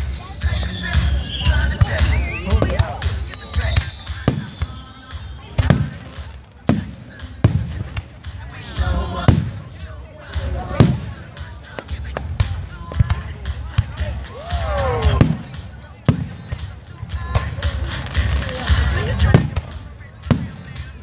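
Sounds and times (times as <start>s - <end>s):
fireworks bursting with sharp bangs: 0.0s - 21.0s.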